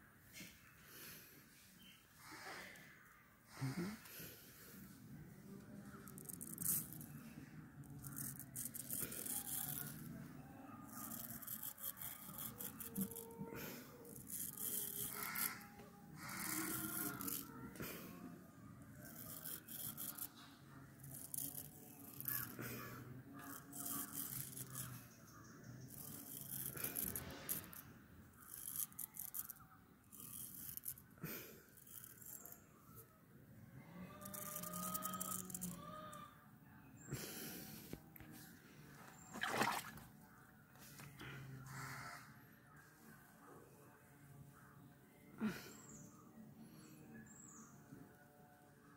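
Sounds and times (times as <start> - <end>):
razor scraping through hair: 6.0 - 7.2, 7.8 - 10.1, 10.8 - 13.4, 14.0 - 17.8, 19.0 - 25.0, 25.8 - 27.8, 28.4 - 31.0, 31.7 - 32.6, 34.2 - 35.8.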